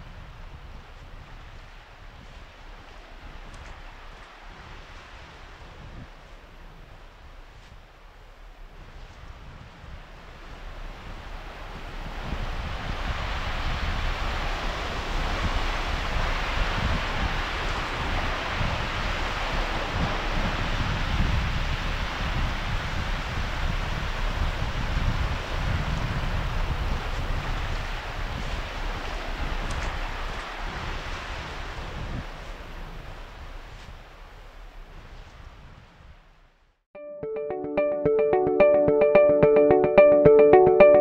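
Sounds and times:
wind buffeting microphone: 0.0 - 36.2.

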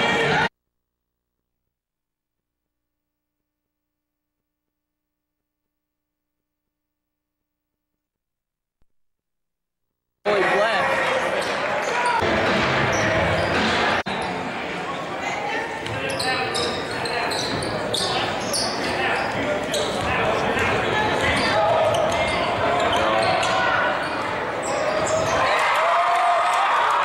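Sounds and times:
crowd and player voices echoing: 10.3 - 27.0.

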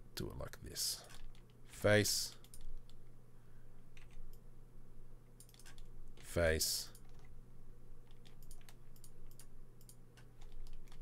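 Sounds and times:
keyboard and mouse clicking: 1.0 - 1.6, 2.3 - 3.0, 4.0 - 4.4, 5.4 - 6.3, 6.9 - 7.3, 8.0 - 11.0.

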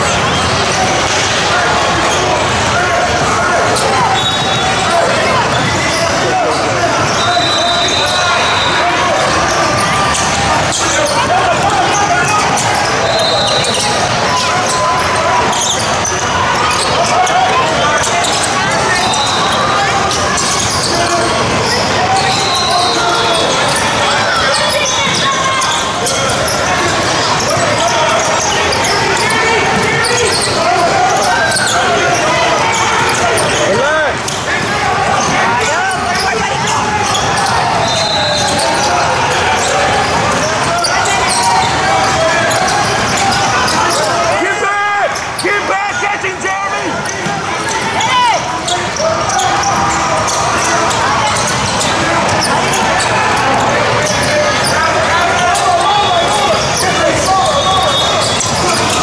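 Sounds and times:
overlapping voices: 0.0 - 59.0.

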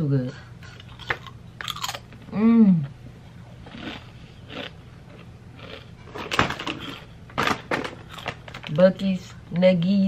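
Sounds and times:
snack bag crinkling: 5.6 - 8.8.

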